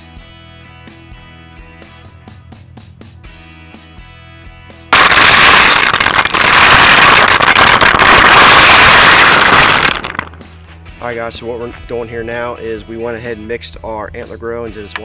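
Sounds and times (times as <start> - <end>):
corn kernels clattering: 5.0 - 10.4.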